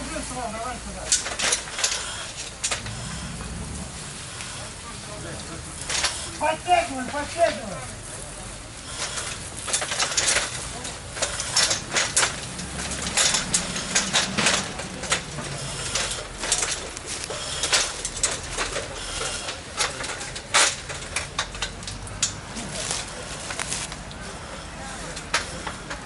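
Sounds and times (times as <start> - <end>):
fire crackling and popping: 0.0 - 26.0
low steady rumble: 2.6 - 5.8.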